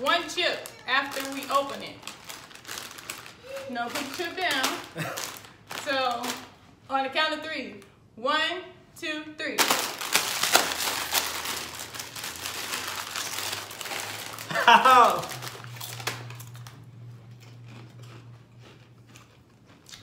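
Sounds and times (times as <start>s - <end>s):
chip bags crinkling: 0.0s - 6.8s, 9.6s - 20.0s.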